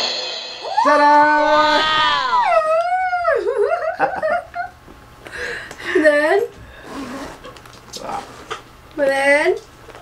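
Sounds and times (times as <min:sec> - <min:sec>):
dog howling: 0:00.8 - 0:03.4.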